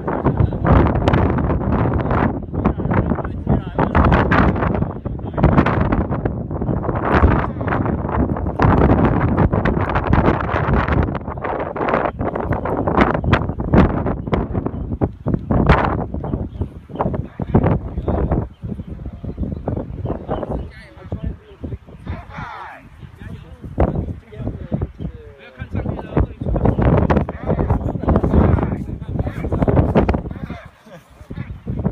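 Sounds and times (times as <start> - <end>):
wind gusting across microphone: 0.0 - 31.9.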